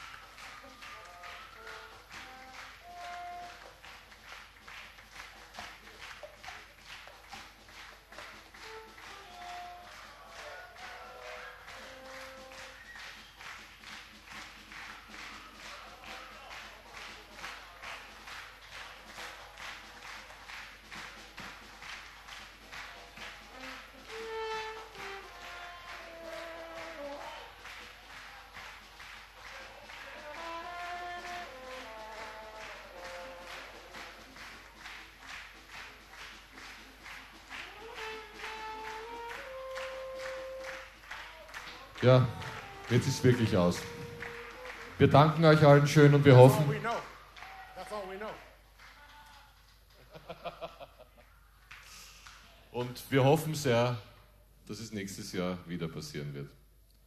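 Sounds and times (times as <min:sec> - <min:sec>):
audience clapping in unison: 0:00.0 - 0:54.0.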